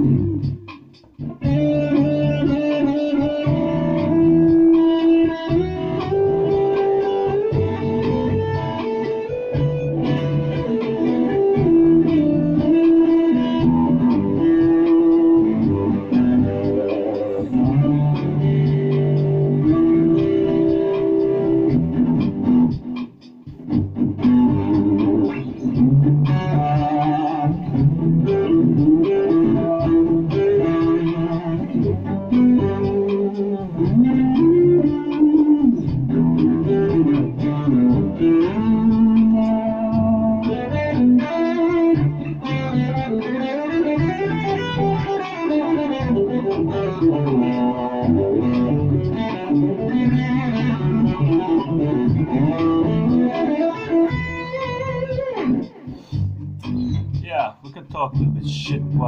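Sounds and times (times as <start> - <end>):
electric guitar lead lines: 0.0 - 59.0.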